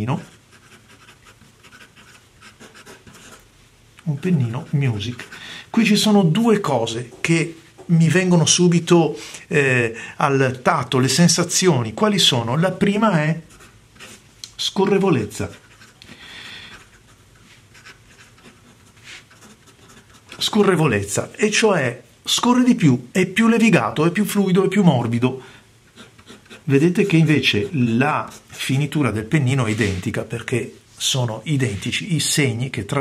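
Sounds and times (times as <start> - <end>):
pen nib writing on paper: 0.2 - 3.4, 25.9 - 26.7
pen nib scratching on paper: 0.2 - 3.5, 4.5 - 5.4, 13.4 - 14.2, 14.8 - 16.1, 16.7 - 20.5, 25.9 - 28.5.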